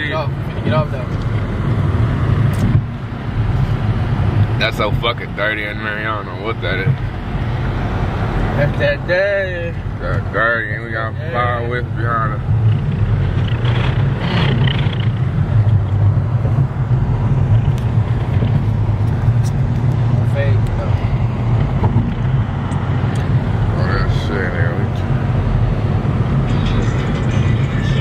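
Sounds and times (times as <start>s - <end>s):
car driving rumble: 0.0s - 28.0s.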